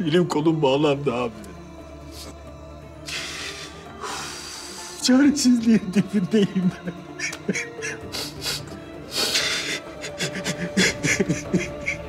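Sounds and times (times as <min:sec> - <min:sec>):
soft background music: 0:00.0 - 0:12.0
man sobbing: 0:05.4 - 0:12.0.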